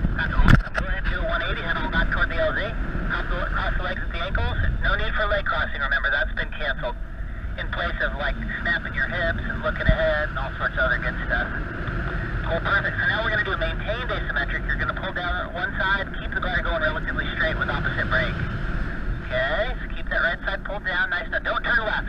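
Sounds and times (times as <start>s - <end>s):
wind rumble on microphone: 0.0s - 22.0s
voice talking over radio: 0.2s - 11.7s, 12.4s - 18.5s, 19.2s - 22.0s.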